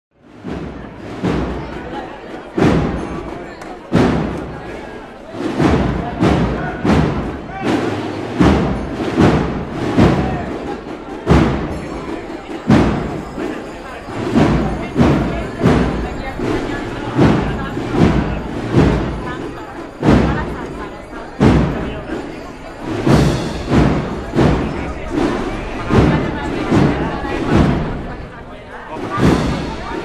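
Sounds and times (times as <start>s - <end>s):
crowd voices: 0.1s - 30.0s
marching drum beats: 0.2s - 30.0s
band music: 0.4s - 30.0s.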